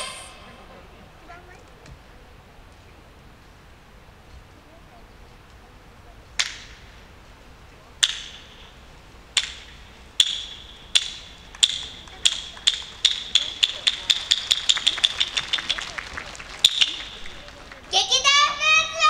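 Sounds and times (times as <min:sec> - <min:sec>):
wooden clappers clacking: 0:08.0 - 0:08.7, 0:09.3 - 0:18.0.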